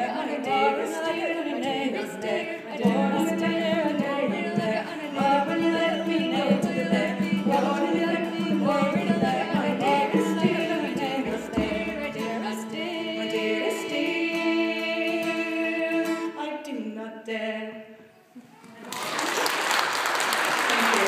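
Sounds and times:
women singing in harmony: 0.0s - 18.2s.

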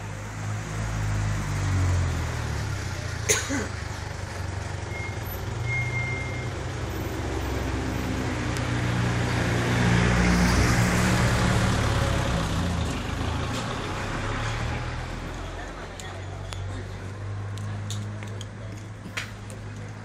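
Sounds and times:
road noise: 0.0s - 20.0s
vehicle engine driving past: 6.1s - 15.7s.

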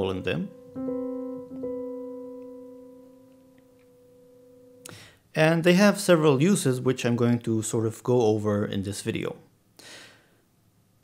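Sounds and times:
piano held interval: 0.0s - 5.8s.

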